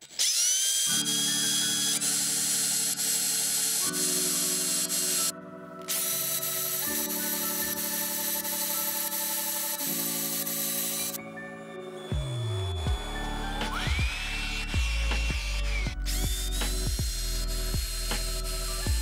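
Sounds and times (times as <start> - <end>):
drill press whirring into wood: 0.0 - 5.3
background music: 0.9 - 19.0.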